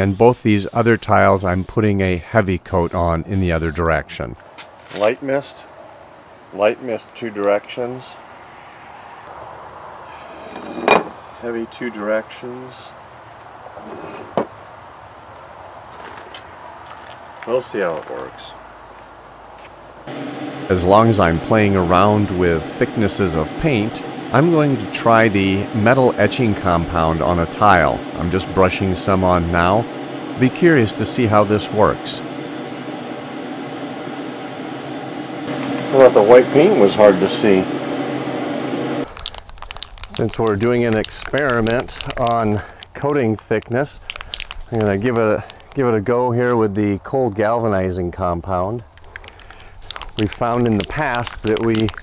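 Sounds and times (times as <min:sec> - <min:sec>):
steady mechanical hum: 0:20.0 - 0:39.1
small clicks and crackles: 0:39.1 - 0:45.9, 0:48.9 - 0:52.0.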